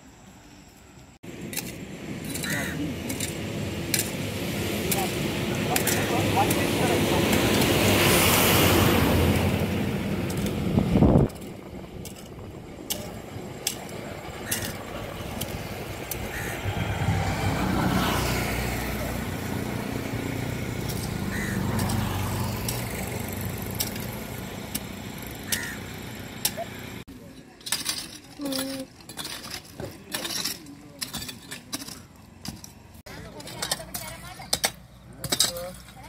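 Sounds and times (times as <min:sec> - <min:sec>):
motor vehicle engine: 0:01.0 - 0:27.1
engine passing: 0:01.3 - 0:27.1.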